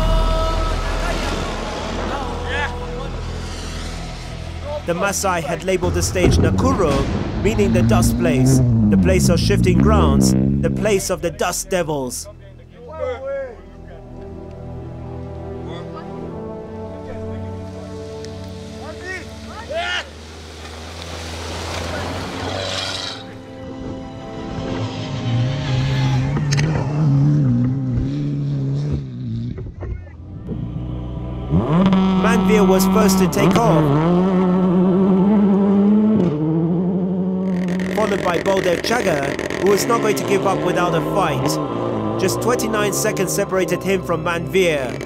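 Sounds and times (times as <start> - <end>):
background music: 0.0 - 28.7, 30.2 - 45.0
vehicle driving past on dirt road: 0.6 - 11.3, 17.1 - 45.0.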